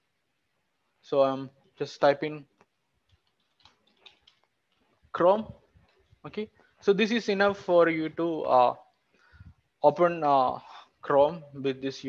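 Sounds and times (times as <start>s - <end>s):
keyboard typing: 3.0s - 4.9s.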